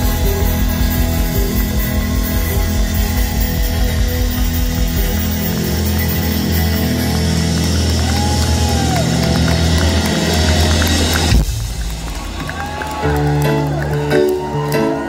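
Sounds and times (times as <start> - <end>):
crowd cheering: 0.0 - 15.0
rock band playing: 0.0 - 15.0.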